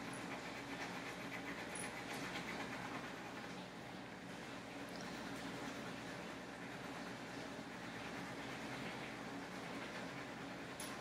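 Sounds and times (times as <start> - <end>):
crayon scrubbing on paper: 0.0 - 3.5.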